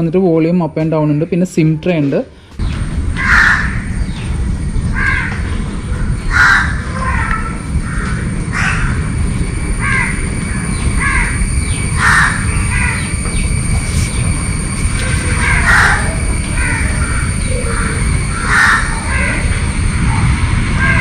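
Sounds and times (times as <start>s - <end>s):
steady low rumble: 2.5s - 21.0s
birds harsh calls: 2.6s - 21.0s.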